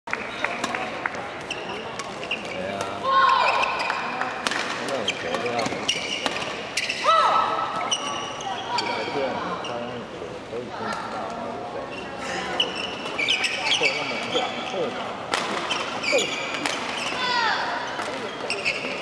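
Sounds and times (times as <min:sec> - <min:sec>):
shoes squeaking on court: 0:01.4 - 0:07.1, 0:07.8 - 0:10.0, 0:11.8 - 0:19.0
rackets striking shuttlecock: 0:04.4 - 0:06.6.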